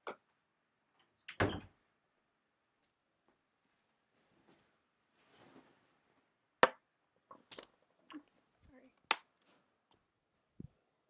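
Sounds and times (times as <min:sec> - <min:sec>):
faint rustles and scrapes: 0:03.6 - 0:06.3.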